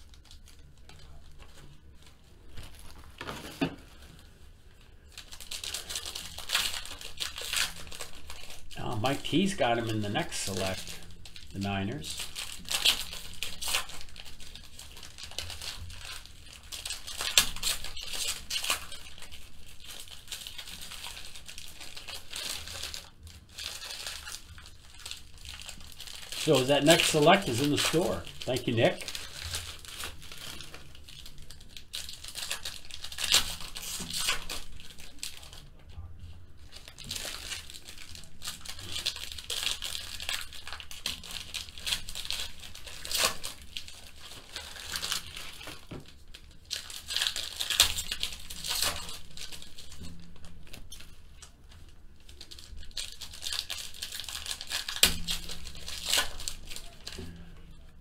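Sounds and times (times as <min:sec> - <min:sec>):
foil wrappers crinkling and tearing: 0:00.0 - 0:58.0.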